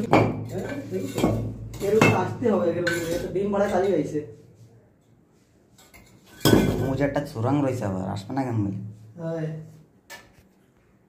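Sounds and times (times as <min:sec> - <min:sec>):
metal rod clanking on bricks: 0:00.0 - 0:04.1.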